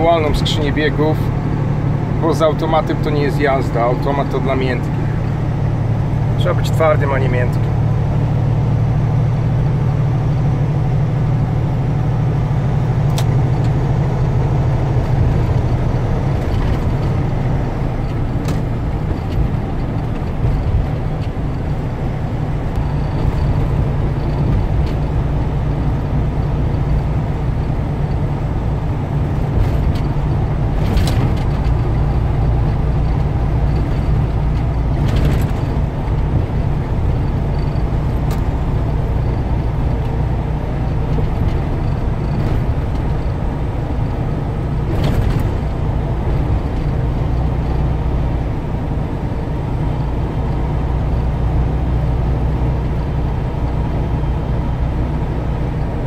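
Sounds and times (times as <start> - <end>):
diesel truck engine droning: 0.0 - 56.0
tyre and road noise: 0.0 - 56.0.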